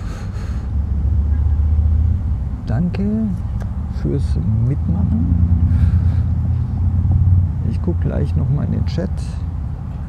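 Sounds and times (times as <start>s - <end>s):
loud low rumble: 3.9s - 8.1s.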